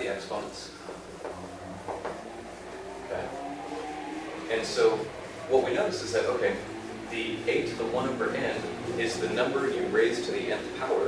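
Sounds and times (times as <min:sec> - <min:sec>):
steady room hum: 0:00.0 - 0:11.0.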